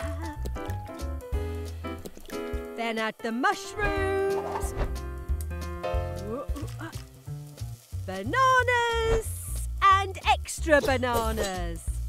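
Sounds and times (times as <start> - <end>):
light cartoon background music: 0.0 - 12.0
frying pan sizzle: 5.2 - 12.0.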